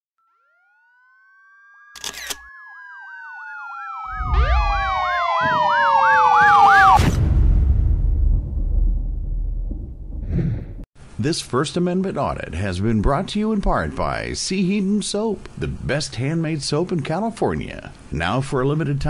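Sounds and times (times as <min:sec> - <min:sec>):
police siren wailing: 0:00.2 - 0:07.2
low rumble: 0:07.0 - 0:10.8.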